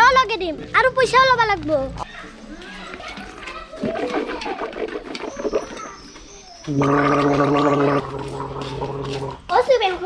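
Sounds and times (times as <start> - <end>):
man gargling: 6.7 - 9.4.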